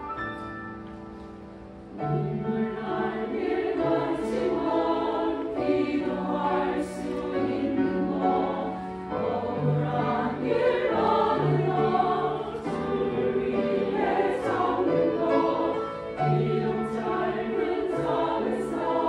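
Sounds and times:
grand piano accompaniment: 0:00.0 - 0:19.0
choir singing: 0:01.9 - 0:19.0.

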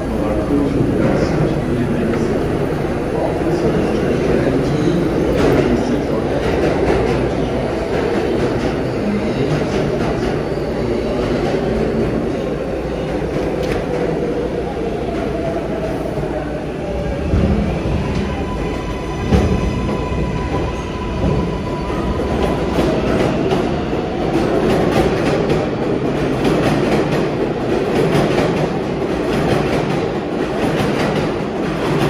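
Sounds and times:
crowd chatter: 0:00.0 - 0:32.0
subway train equipment noise: 0:00.0 - 0:32.0.

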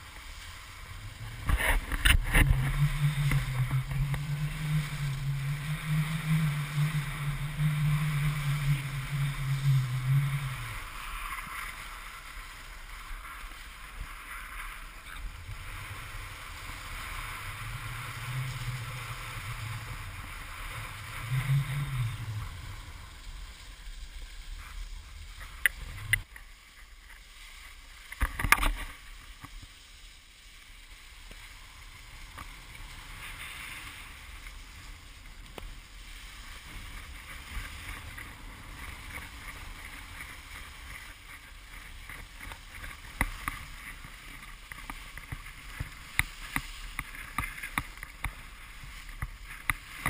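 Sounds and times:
wind on microphone: 0:00.0 - 0:26.4, 0:31.5 - 0:50.0
skis scraping over snow: 0:00.0 - 0:50.0.

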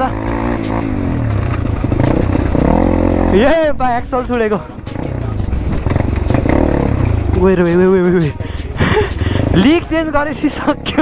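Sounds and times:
dirt bike engine at low revs: 0:00.0 - 0:11.0.

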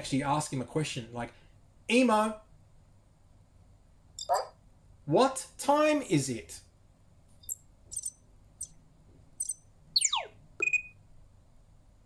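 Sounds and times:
robot electronic chirps: 0:07.9 - 0:08.7, 0:09.4 - 0:11.0.

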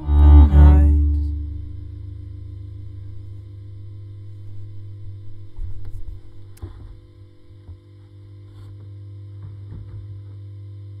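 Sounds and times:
bass amplifier mains hum: 0:00.0 - 0:11.0.

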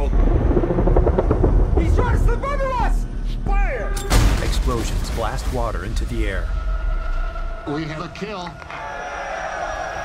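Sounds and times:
deep rumble of sound effects: 0:00.0 - 0:07.7
film score: 0:00.0 - 0:10.0.

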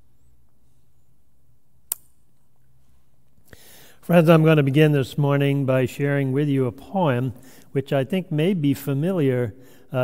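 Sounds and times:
faint low hum: 0:00.0 - 0:10.0
sharp click: 0:01.9 - 0:02.2.

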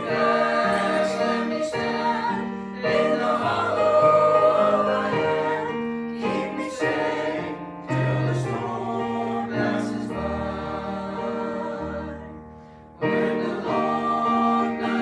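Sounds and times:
choir singing a hymn: 0:00.0 - 0:15.0.

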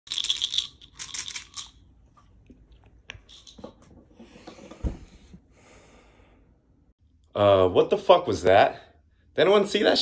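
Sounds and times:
pills rattling in plastic bottle: 0:00.1 - 0:01.8.

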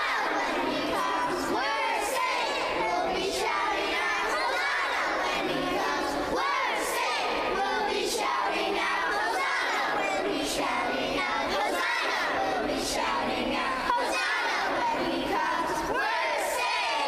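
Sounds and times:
children shouting and cheering: 0:00.0 - 0:17.0.

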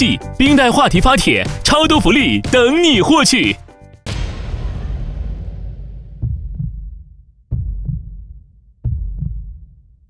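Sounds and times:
low rumble: 0:04.1 - 0:08.5
heartbeat-like double thumps: 0:04.1 - 0:10.0.

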